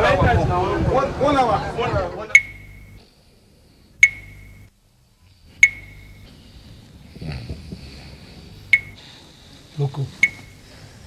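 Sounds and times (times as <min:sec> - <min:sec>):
sharp ringing pings: 0:02.4 - 0:03.0, 0:04.0 - 0:04.7, 0:05.6 - 0:06.3, 0:08.6 - 0:09.0, 0:10.2 - 0:10.7.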